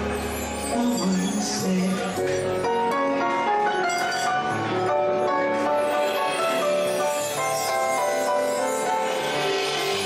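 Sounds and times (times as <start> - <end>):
piano melody over chords: 0.0 - 10.0.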